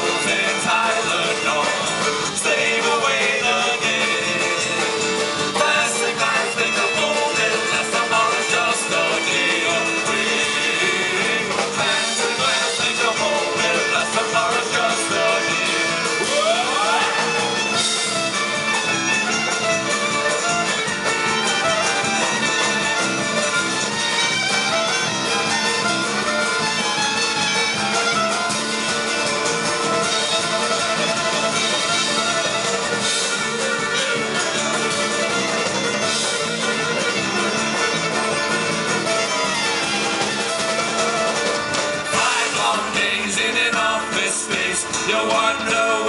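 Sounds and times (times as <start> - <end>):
celtic rock band playing: 0.0 - 46.0.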